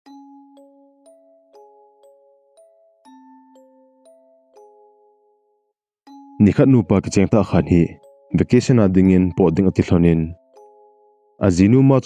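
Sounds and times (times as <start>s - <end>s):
soft bell-like chords: 0.0s - 12.0s.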